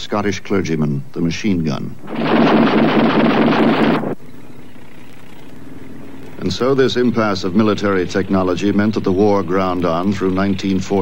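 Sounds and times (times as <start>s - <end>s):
steady low hum: 1.8s - 11.0s
battle gunfire: 2.0s - 4.2s.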